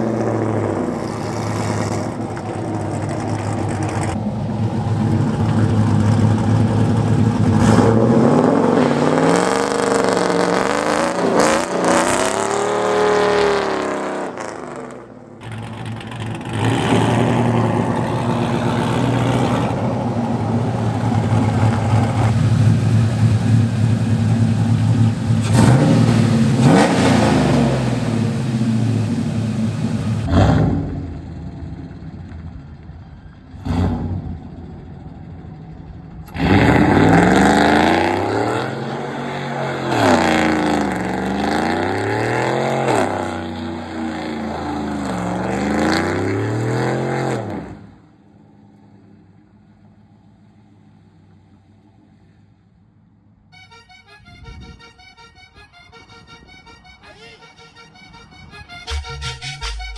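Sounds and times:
pickup engine revving: 0:00.0 - 0:32.6, 0:33.5 - 0:35.0, 0:35.8 - 0:48.0.

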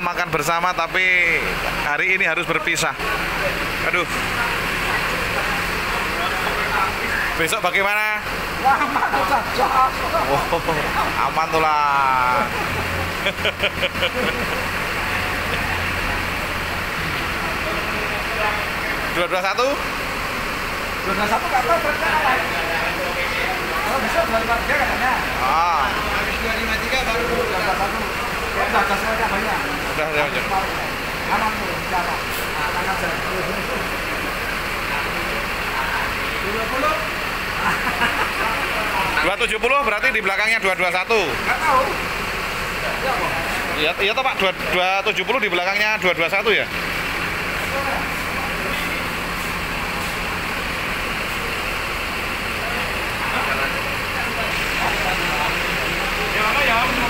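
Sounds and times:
bus engine idling: 0:00.0 - 0:57.0
people talking: 0:00.0 - 0:57.0.

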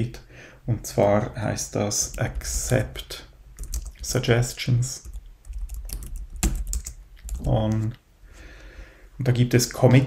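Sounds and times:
keyboard typing: 0:03.6 - 0:04.2, 0:05.0 - 0:08.0.

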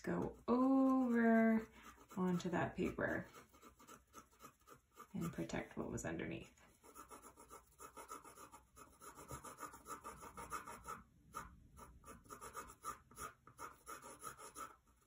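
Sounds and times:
pencil shading on paper: 0:00.0 - 0:06.0, 0:06.7 - 0:15.0.

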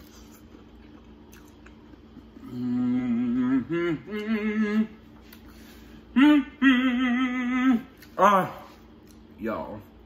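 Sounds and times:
man humming mmm: 0:02.2 - 0:05.2, 0:06.0 - 0:08.6.

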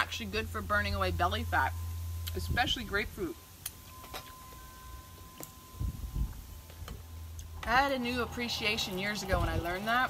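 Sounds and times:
wind rumble on microphone: 0:02.3 - 0:03.3, 0:05.6 - 0:10.0.

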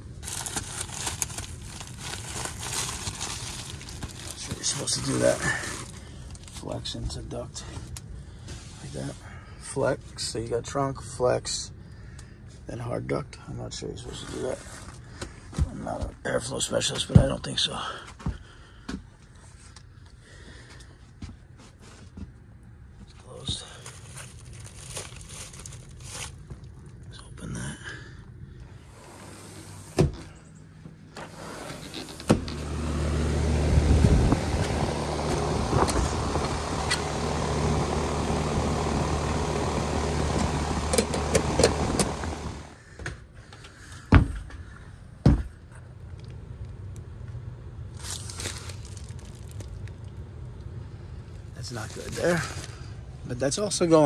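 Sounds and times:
air conditioner unit humming: 0:00.0 - 0:14.2, 0:14.9 - 0:54.0
handling noise: 0:29.6 - 0:42.7.

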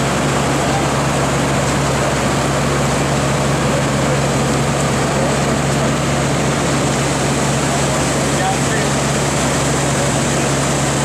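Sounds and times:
fire engine idling: 0:00.0 - 0:11.0.

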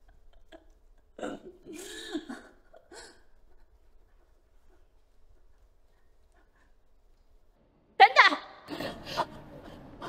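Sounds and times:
woman sobbing: 0:00.0 - 0:03.9.

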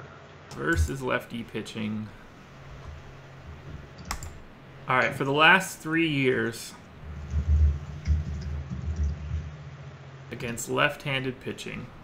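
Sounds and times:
computer keyboard typing: 0:03.9 - 0:04.4, 0:07.2 - 0:09.5
low thuds: 0:07.0 - 0:09.7.

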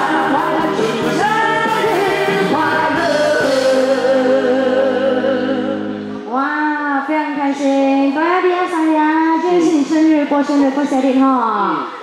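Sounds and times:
woman singing long notes: 0:00.0 - 0:06.9.

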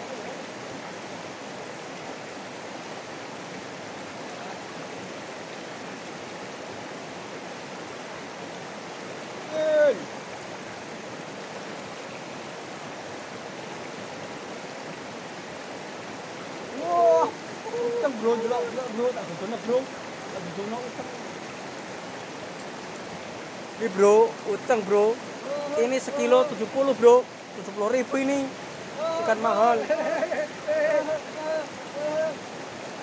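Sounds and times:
river rushing over stones: 0:00.0 - 0:33.0
person shouting: 0:09.4 - 0:10.1, 0:16.7 - 0:18.2, 0:25.4 - 0:26.5, 0:29.0 - 0:29.7, 0:30.6 - 0:32.4.

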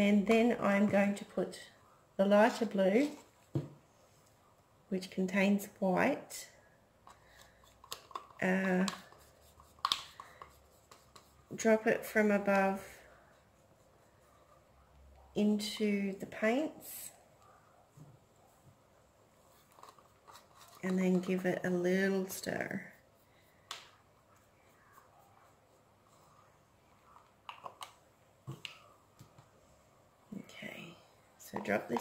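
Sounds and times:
stick tapping plastic cup: 0:31.5 - 0:32.0.

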